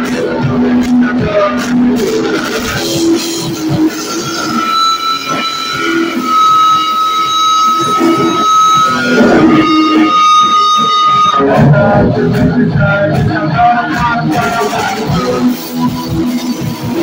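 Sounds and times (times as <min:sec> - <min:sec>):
live band playing loud: 0:00.0 - 0:17.0.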